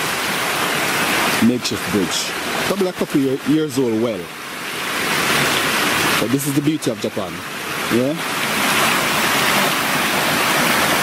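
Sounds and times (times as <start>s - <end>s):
stream running over rocks: 0.0s - 11.0s.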